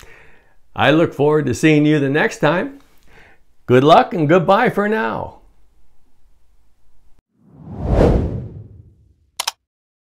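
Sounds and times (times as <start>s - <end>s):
whoosh sound effect: 7.4s - 9.1s.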